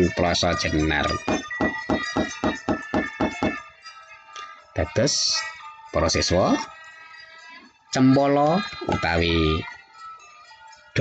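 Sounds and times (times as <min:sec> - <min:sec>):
ringing instrument tones: 0:00.0 - 0:11.0
wooden knocker rapping wooden chest: 0:01.2 - 0:03.6.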